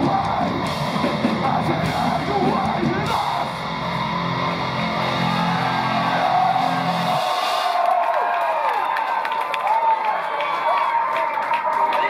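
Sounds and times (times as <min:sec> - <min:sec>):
high guitar tones sliding: 0:00.0 - 0:07.8
distorted guitar chord: 0:00.3 - 0:07.5.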